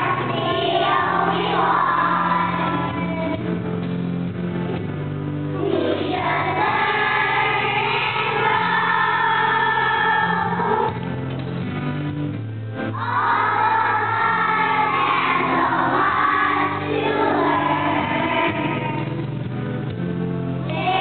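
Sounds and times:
children's choir singing: 0.0 - 3.4, 5.6 - 11.0, 12.9 - 19.2, 20.6 - 21.0
music with low sustained notes: 0.0 - 21.0.

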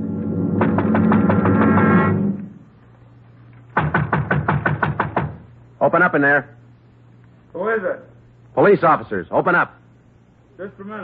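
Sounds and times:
fist pounding on a door: 3.8 - 5.4.

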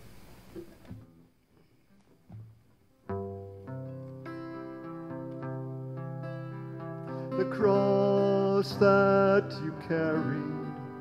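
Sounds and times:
acoustic guitar string plucks: 2.3 - 11.0.

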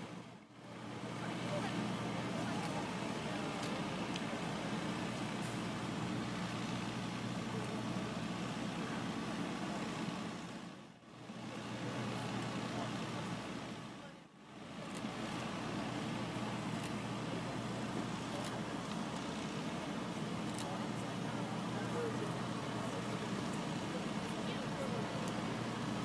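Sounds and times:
low outdoor rumble with hiss: 0.0 - 26.0.

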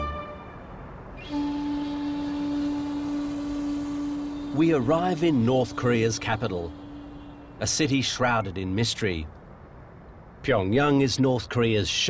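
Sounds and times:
steady low hum: 0.7 - 9.9
hiss: 1.2 - 7.3.

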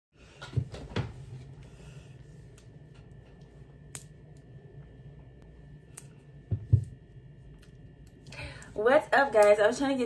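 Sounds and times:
low room hum: 0.2 - 10.0.

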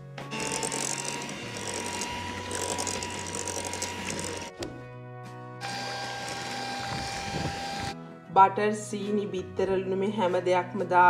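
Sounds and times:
electric hand mixer whining: 0.3 - 4.6, 5.6 - 8.0.

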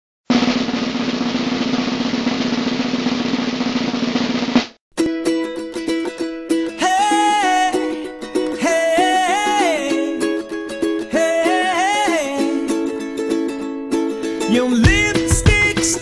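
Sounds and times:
snare drum roll: 0.3 - 4.8
plucked string music: 5.0 - 16.0.

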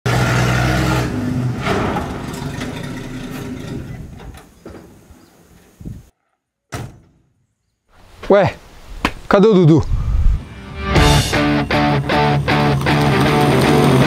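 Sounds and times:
truck engine running loud: 11.2 - 14.0.

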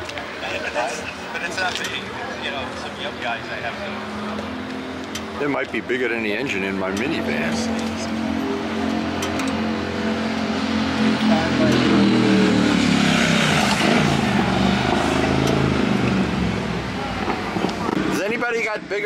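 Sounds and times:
motorcycle passing: 0.7 - 18.3.

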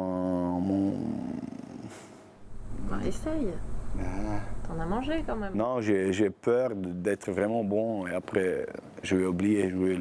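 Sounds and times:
man's creaky hum of hesitation: 0.0 - 2.8, 3.6 - 4.7
man speaking: 4.0 - 4.6.

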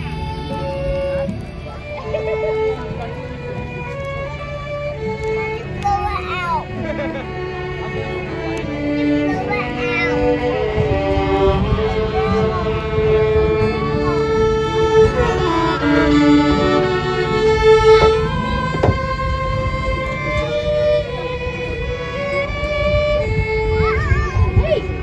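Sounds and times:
fiddles playing a tune: 0.0 - 25.0.

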